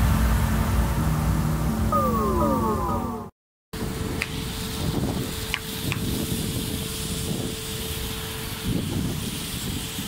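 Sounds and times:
steady droning tone: 0:00.0 - 0:03.3
low noisy rumble: 0:00.0 - 0:05.4
falling electronic tones: 0:01.6 - 0:03.4.

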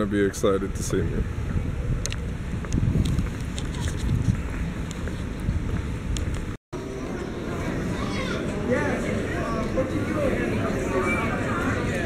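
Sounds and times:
wind buffeting microphone: 0:00.0 - 0:06.6.

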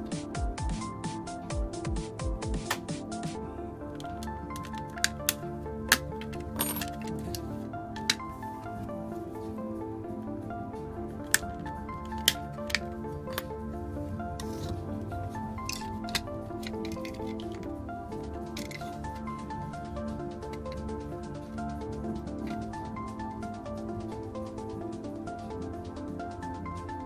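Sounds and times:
background music: 0:00.0 - 0:27.0.

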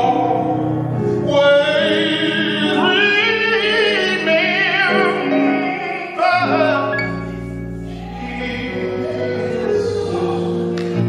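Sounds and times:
choir singing gospel: 0:00.0 - 0:11.0
man singing into microphone: 0:00.0 - 0:11.0.

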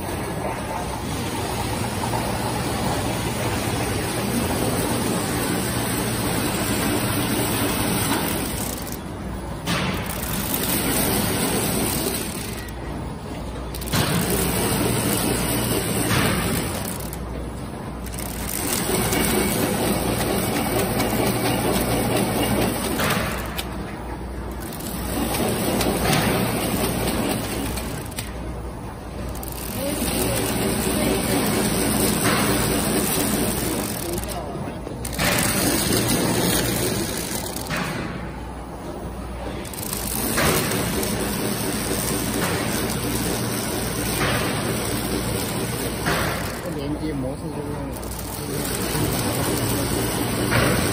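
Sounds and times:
packing machine running: 0:00.0 - 0:50.9.

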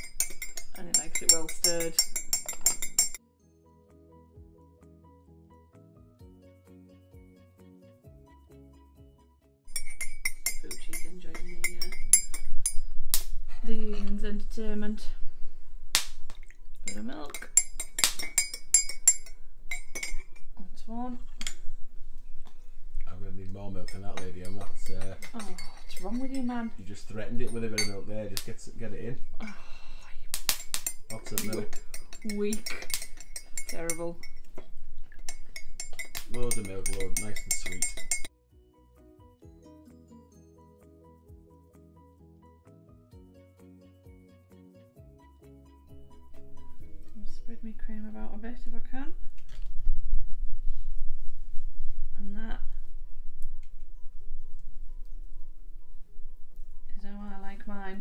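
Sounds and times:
teaspoon clinking in ceramic mug: 0:00.0 - 0:03.2, 0:09.7 - 0:12.9, 0:16.9 - 0:20.5, 0:23.8 - 0:26.5, 0:27.4 - 0:28.0, 0:30.6 - 0:34.5, 0:35.2 - 0:38.3
faint background music: 0:00.0 - 0:49.9, 0:50.5 - 0:58.0.

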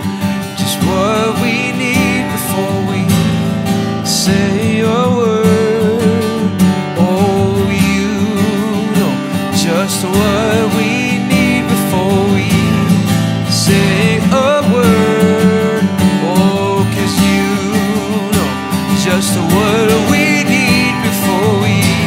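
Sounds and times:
acoustic guitar strumming: 0:00.0 - 0:22.0
man singing: 0:00.0 - 0:22.0.

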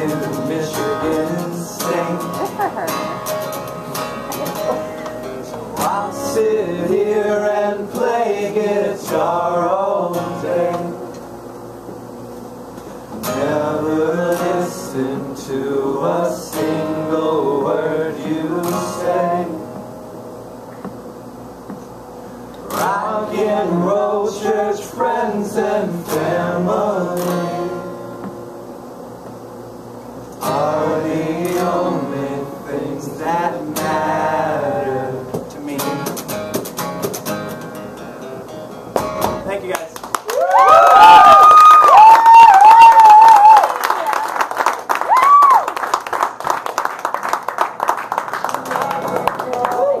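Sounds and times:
man singing: 0:00.0 - 0:02.8, 0:05.4 - 0:11.1, 0:13.2 - 0:19.7, 0:22.7 - 0:27.8, 0:30.4 - 0:36.2
strummed acoustic guitar: 0:00.0 - 0:12.0, 0:12.8 - 0:29.4, 0:30.3 - 0:39.6
audience clapping: 0:39.0 - 0:50.0.

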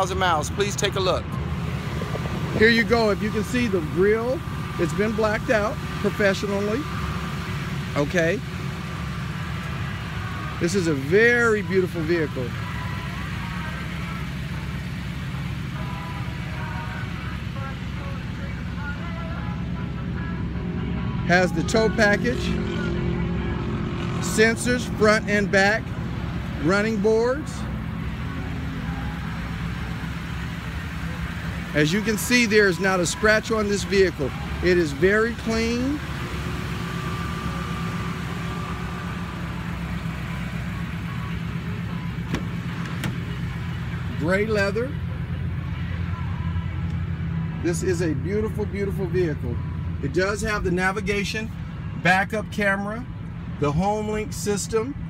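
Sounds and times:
vehicle engine idling: 0:00.0 - 0:55.0.

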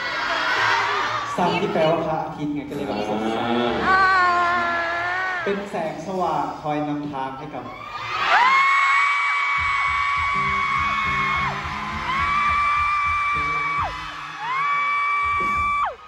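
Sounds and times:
audience screaming: 0:07.6 - 0:16.0
music with regular beat: 0:09.5 - 0:14.6, 0:15.2 - 0:16.0.

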